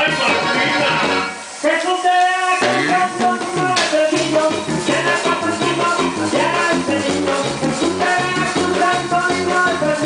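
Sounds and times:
band with accordion guitar and bass: 0.0 - 1.5, 2.6 - 10.0.

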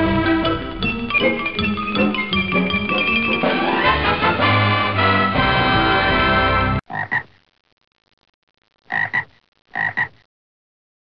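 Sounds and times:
frog-like croaks: 6.9 - 7.4, 8.8 - 10.3.

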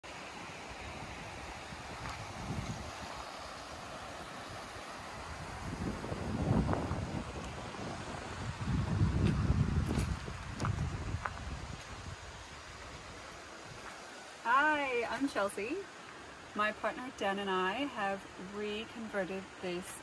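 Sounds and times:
wind buffeting microphone: 0.8 - 13.9.

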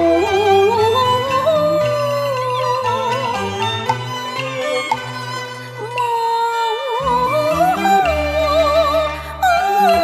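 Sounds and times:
woman singing opera melody: 0.0 - 3.7, 4.5 - 10.0
traditional instrumental accompaniment: 0.0 - 10.0.

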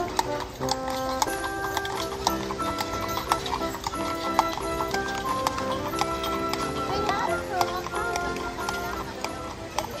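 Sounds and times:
horse hooves clip-clopping on asphalt: 0.0 - 10.0
music of held notes: 0.0 - 10.0.

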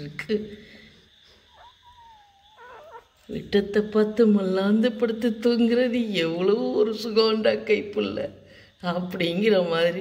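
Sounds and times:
puppy whimpering: 1.3 - 3.3.

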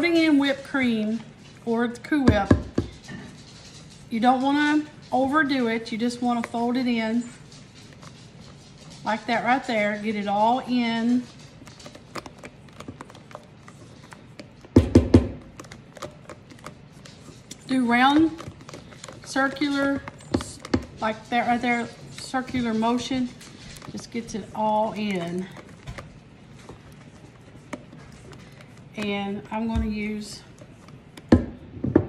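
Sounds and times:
spoon scraping metal bowl: 0.0 - 31.3
spatula stirring mixture: 0.0 - 31.8.

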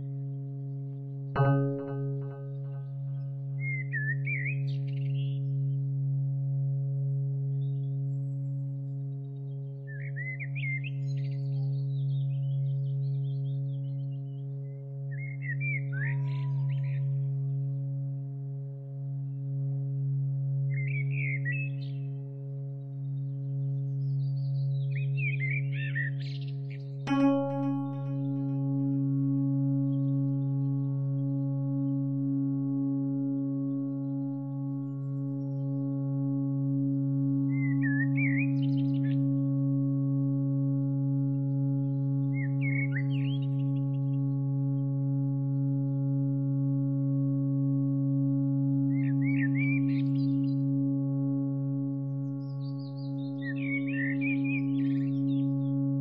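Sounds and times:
low musical drone: 0.0 - 56.0.

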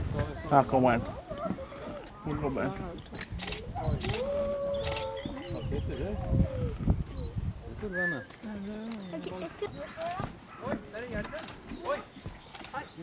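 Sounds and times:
wolf howling: 4.0 - 5.6.

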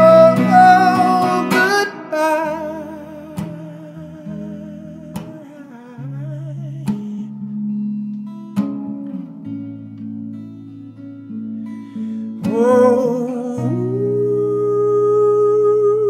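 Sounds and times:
electric guitar chords strummed: 0.0 - 14.9.

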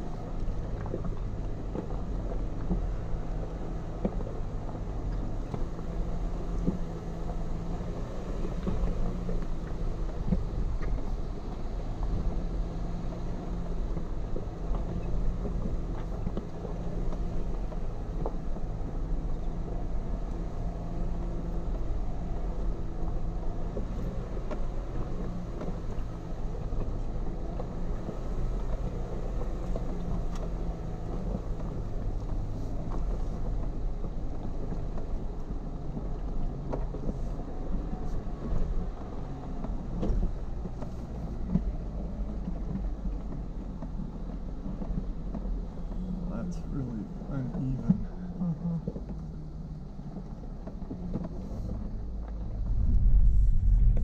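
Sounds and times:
car engine running at low crawl: 0.0 - 54.0.

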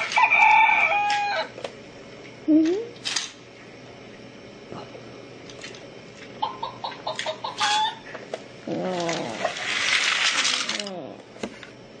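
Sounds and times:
small hard objects clattering: 8.7 - 11.0.

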